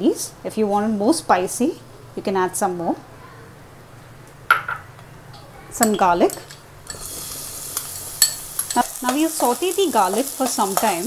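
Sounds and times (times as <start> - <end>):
faint steady hiss: 0.0 - 11.0
cookware clinking: 4.5 - 5.1, 5.8 - 9.3.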